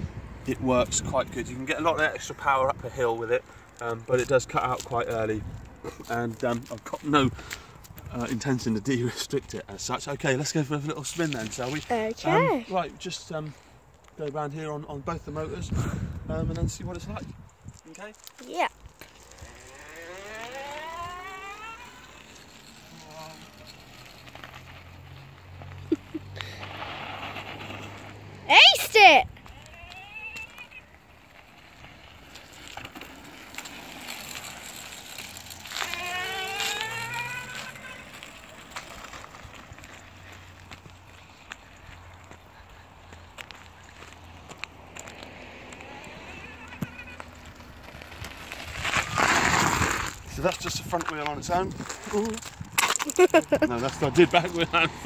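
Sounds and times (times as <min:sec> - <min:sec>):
electric motors whining: 0:19.3 - 0:23.0, 0:35.6 - 0:38.4.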